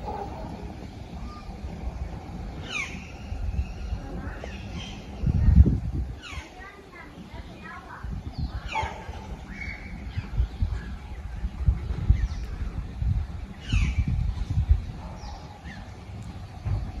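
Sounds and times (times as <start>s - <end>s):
birds calling: 0.0s - 17.0s
wind rumble on microphone: 0.0s - 17.0s.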